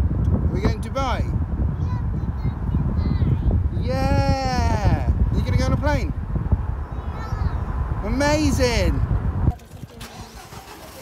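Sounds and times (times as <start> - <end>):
car road noise: 4.7 - 11.0
toddler calling out: 6.9 - 7.7.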